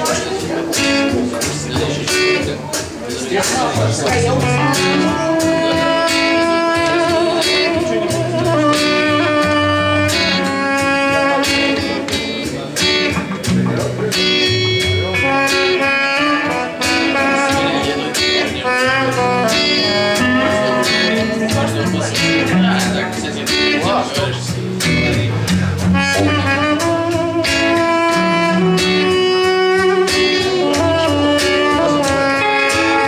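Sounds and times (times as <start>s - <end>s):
electric guitar: 0.0s - 33.0s
strummed acoustic guitar: 0.0s - 33.0s
pitch-bending wind instrument melody: 4.0s - 33.0s.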